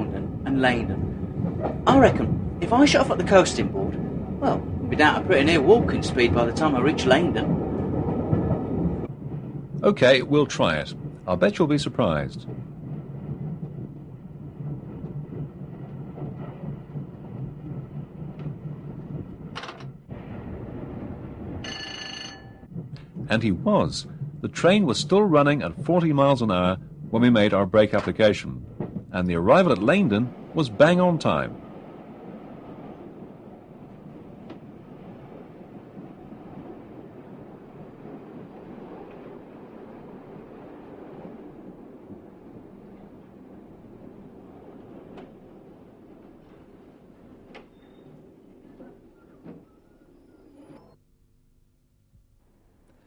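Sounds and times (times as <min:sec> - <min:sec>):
train wheels rumbling on rails: 0:00.0 - 0:51.0
short bell-like ring: 0:21.7 - 0:22.6.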